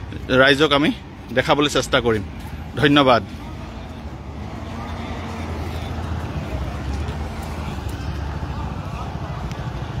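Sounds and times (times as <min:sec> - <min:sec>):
faint voices: 0:00.0 - 0:10.0
truck diesel engine rumbling: 0:00.0 - 0:10.0.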